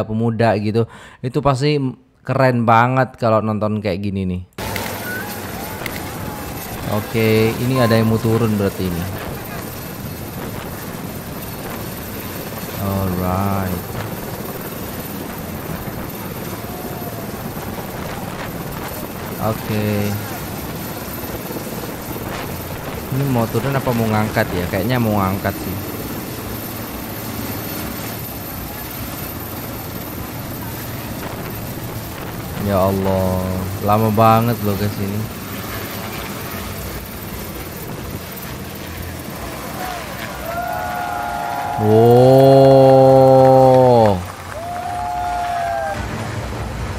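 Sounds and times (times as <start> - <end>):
helicopter hovering: 4.6 - 46.9.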